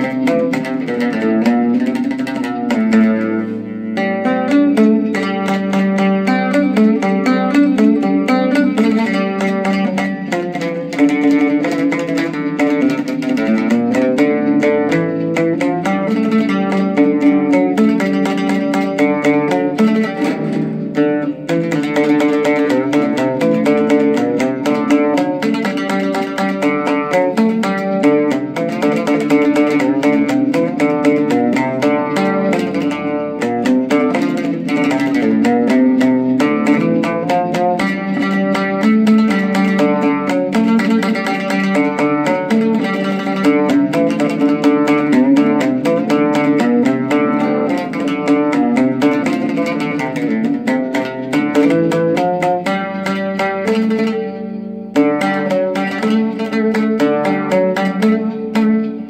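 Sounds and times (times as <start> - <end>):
oud plucked melody: 0.0 - 59.0.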